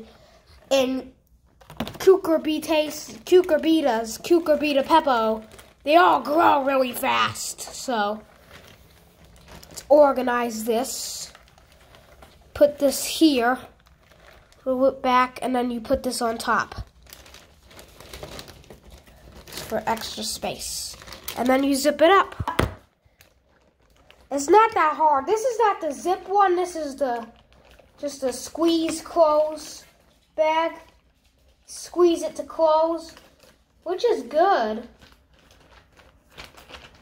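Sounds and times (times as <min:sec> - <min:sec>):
plastic bag crinkling: 0:00.0 - 0:37.0
faint handling clicks and rustles: 0:06.9 - 0:09.9, 0:27.2 - 0:31.7.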